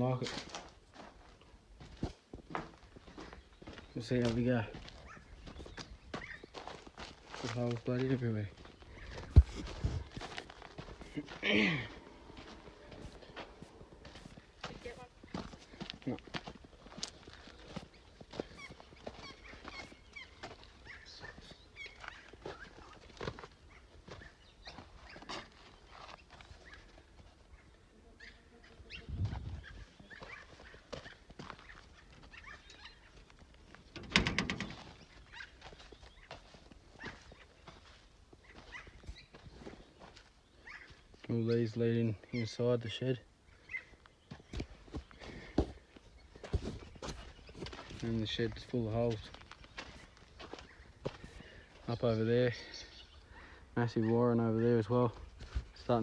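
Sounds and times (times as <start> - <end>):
footsteps on twigs and grass: 0.2 - 27.7, 29.0 - 34.0, 34.6 - 41.3, 43.8 - 52.7, 55.1 - 56.0
man coughing: 11.2 - 12.0.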